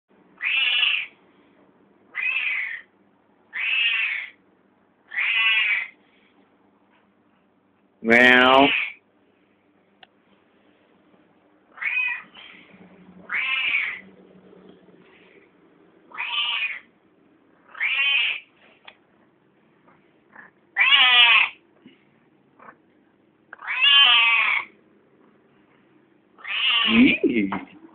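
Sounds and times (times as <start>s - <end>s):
cat meowing: 0.4s - 1.1s, 2.2s - 2.8s, 3.5s - 4.3s, 5.1s - 5.9s, 11.7s - 12.6s, 13.3s - 14.0s, 16.1s - 16.9s, 17.7s - 18.4s, 20.8s - 21.6s, 23.6s - 24.7s, 26.4s - 27.3s.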